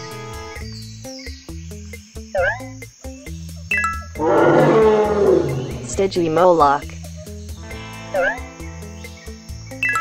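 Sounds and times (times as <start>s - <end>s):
children's background music: 0.0s - 10.0s
dinosaur roar: 4.2s - 6.1s.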